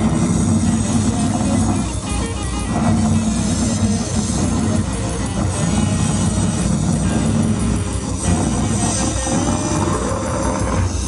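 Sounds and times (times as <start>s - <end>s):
distorted electric guitars drone: 0.0s - 11.0s.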